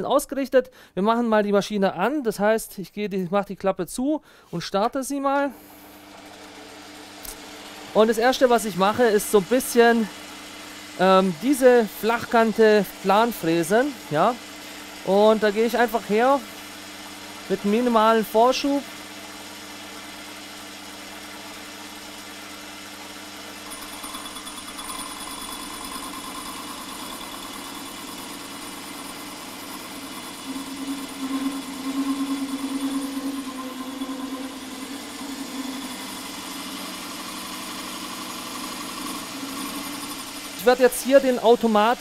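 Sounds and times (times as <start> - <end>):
lathe motor hum: 5.6 - 42.0
high whine of cutting tool: 6.2 - 42.0.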